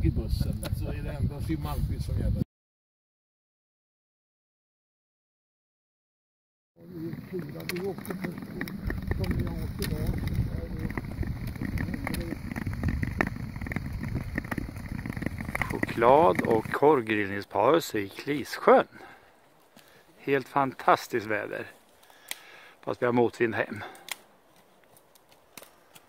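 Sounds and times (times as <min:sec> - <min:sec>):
wind rumble on microphone: 0:00.0 - 0:02.4, 0:07.1 - 0:16.8
skates scraping over ice: 0:06.8 - 0:17.4
ice clicks and crackles: 0:07.0 - 0:17.4, 0:23.8 - 0:26.0
faint sharp clicks: 0:24.0 - 0:26.0.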